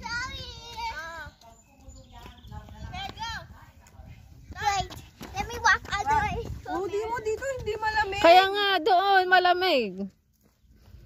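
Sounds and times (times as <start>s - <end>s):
wind rumble on microphone: 0.0s - 8.7s
people talking: 0.1s - 10.1s.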